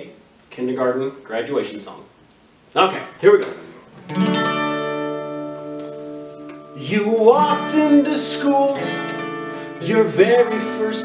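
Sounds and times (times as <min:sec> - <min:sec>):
acoustic guitar chord ringing: 0:04.0 - 0:11.0.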